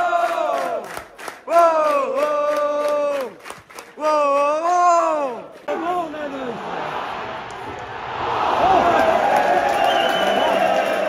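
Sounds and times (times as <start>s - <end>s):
football crowd chanting: 0.0s - 1.0s
sharp claps: 0.2s - 4.6s, 8.9s - 11.0s.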